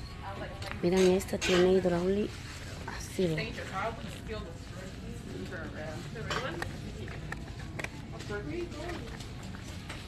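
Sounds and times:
store background hum: 0.0 - 10.0.

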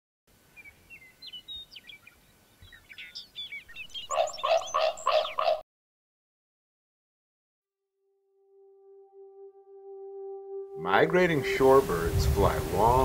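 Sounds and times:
birds chirping and whistling: 0.6 - 5.6
harsh bird calls: 0.6 - 5.6.

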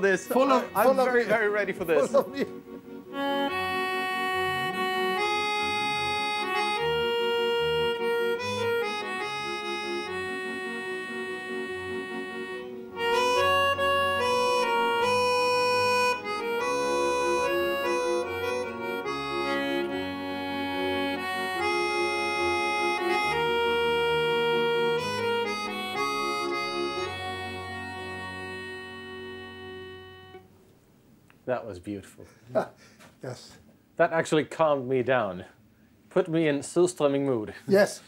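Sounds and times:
accordion playing a tune: 0.0 - 30.6.

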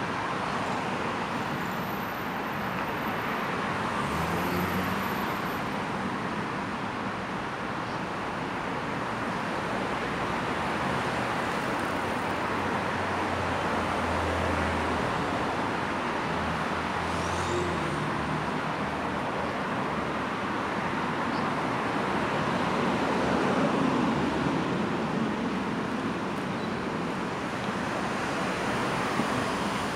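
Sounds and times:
road traffic noise: 0.0 - 29.9.

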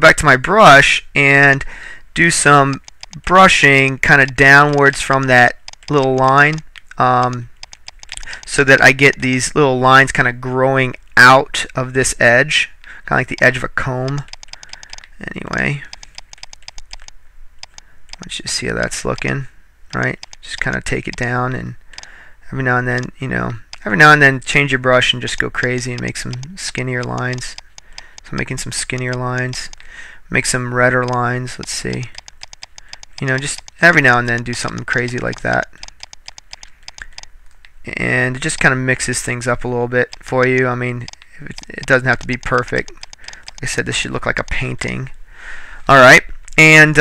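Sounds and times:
rapid mouse clicks: 2.3 - 10.3, 12.8 - 22.3, 22.9 - 45.0.

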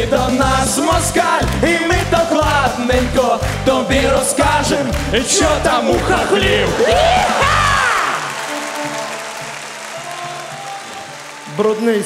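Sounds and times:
audience applauding: 3.4 - 12.0.

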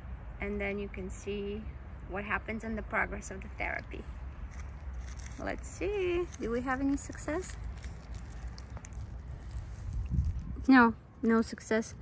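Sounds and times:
steady low rumble: 3.3 - 11.2
paper tissue rustling: 4.5 - 10.4.

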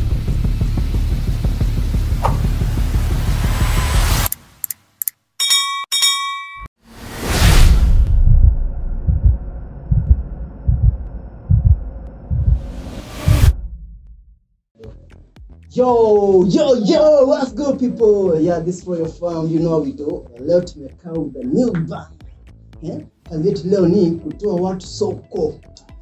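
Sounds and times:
bell-like ding: 5.4 - 6.7
whoosh: 6.8 - 10.9, 11.5 - 14.0
deep thumps: 7.7 - 14.2.

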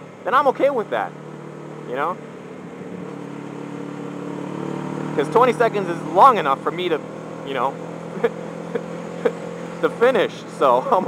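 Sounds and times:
motorcycle engine running: 0.0 - 11.0
road noise: 0.0 - 11.0
wind: 0.0 - 11.0.

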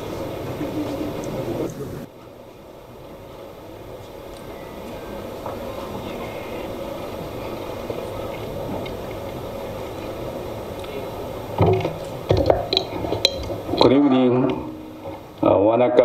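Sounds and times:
large hall background noise: 0.0 - 16.0.

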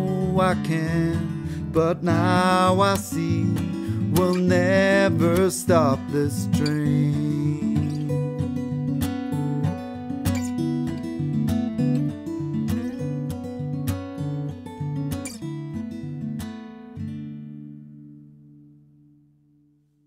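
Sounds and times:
acoustic guitar playing: 0.0 - 20.0.

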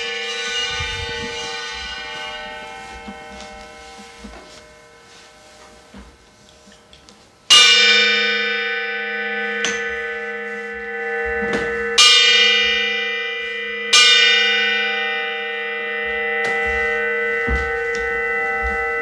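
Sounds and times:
bell ringing: 0.0 - 5.5, 7.5 - 19.0.

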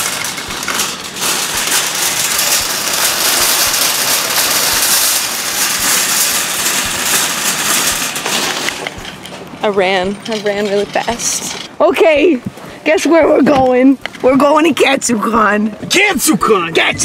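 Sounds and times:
shopping cart rattling on asphalt: 0.0 - 17.0.

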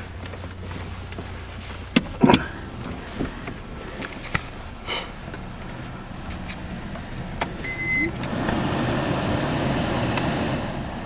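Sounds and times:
car engine idling inside cabin: 0.0 - 11.0.

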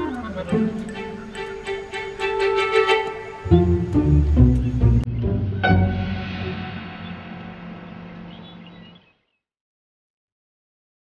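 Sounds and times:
low strings music: 0.0 - 9.0.

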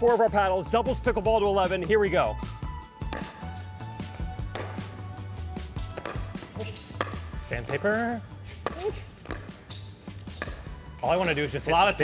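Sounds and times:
paddle hitting ball: 3.0 - 5.1, 5.7 - 11.4.

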